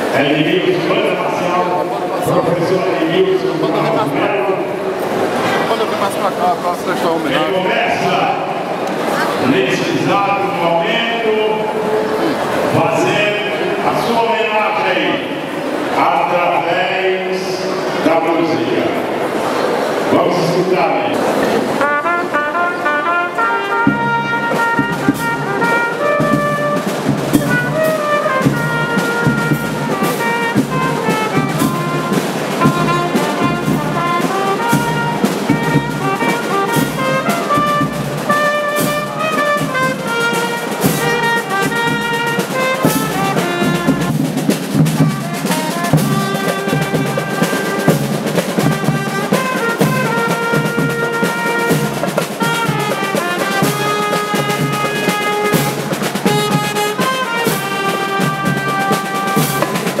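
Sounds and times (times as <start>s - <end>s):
drums beating: 0.0s - 14.3s, 21.1s - 60.0s
brass playing melody: 21.1s - 60.0s.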